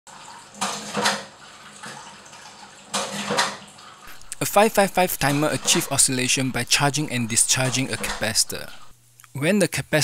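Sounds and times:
tap water running into sink: 0:00.1 - 0:08.9
water splashes: 0:00.1 - 0:08.9.

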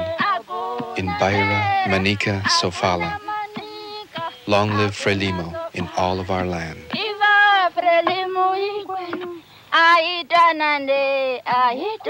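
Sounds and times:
high voices singing held notes: 0:00.0 - 0:10.1.

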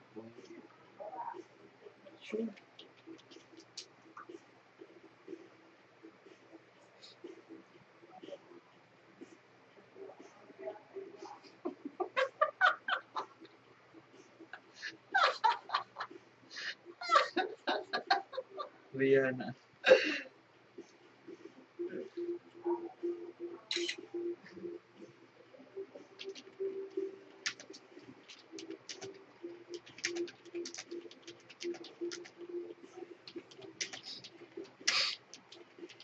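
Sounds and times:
woman laughing: 0:11.6 - 0:13.5, 0:14.6 - 0:18.7, 0:19.9 - 0:20.2.

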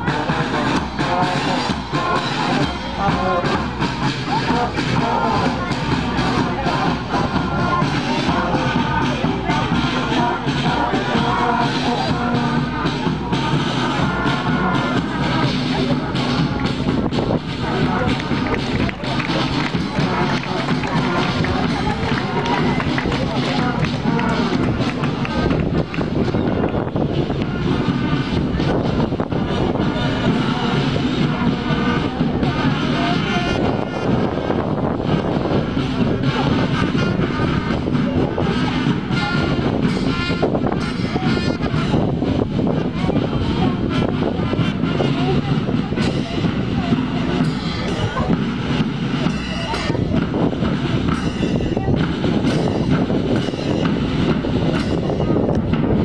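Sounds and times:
marching brass band with drums: 0:00.0 - 0:56.0
people's voices: 0:00.0 - 0:56.0
wind rumbling on microphone: 0:04.2 - 0:56.0.

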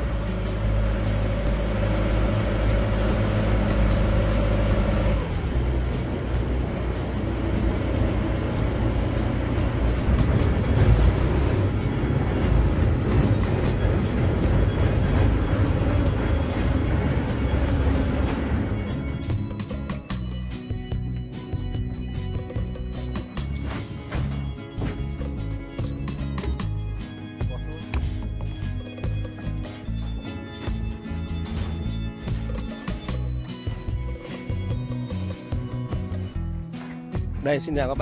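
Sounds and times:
engine knocks: 0:00.0 - 0:20.2, 0:21.1 - 0:36.3
boat engine running: 0:00.0 - 0:36.8.

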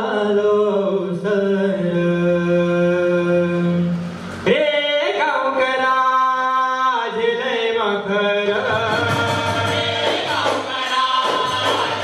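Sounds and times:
men singing in chorus: 0:04.5 - 0:12.0
clay-pot drums: 0:08.6 - 0:12.0
jingling hand percussion: 0:08.6 - 0:12.0.

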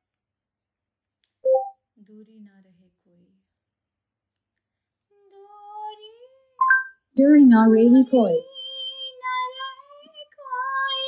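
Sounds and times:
two-note electronic beep: 0:01.5 - 0:01.7.

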